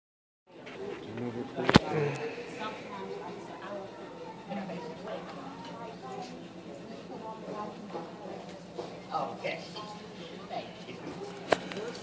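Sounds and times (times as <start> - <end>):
murmur of voices: 0.5 - 12.0.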